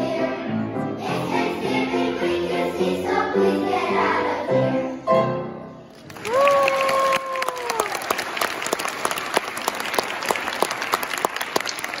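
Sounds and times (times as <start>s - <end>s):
audience applauding: 5.9s - 12.0s
person cheering: 6.2s - 8.1s.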